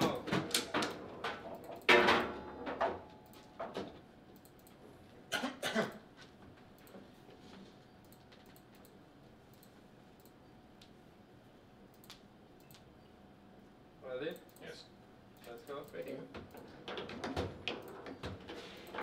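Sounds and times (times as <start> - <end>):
foosball table knocks and clatter: 0.0 - 4.0, 16.3 - 19.0.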